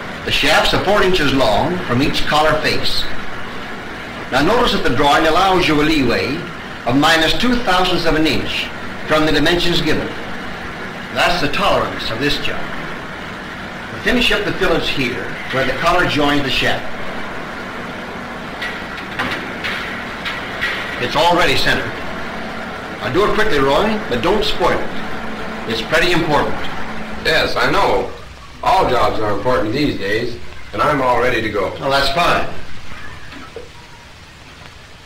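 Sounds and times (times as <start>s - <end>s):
film soundtrack hiss and hum: 0.0s - 35.0s.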